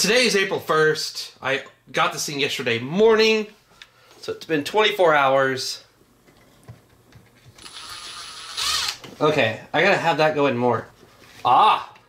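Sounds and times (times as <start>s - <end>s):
impact screwdriver whining: 7.6s - 9.1s.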